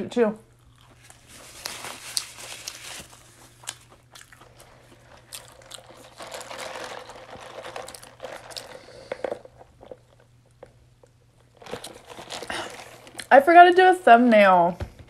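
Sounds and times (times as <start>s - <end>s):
close chewing of burger: 0.6s - 10.2s.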